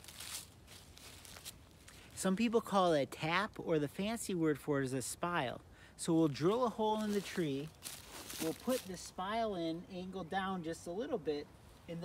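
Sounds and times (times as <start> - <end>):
faint rustling and handling: 0.0 - 2.3, 6.8 - 9.2
low outdoor background: 0.0 - 12.0.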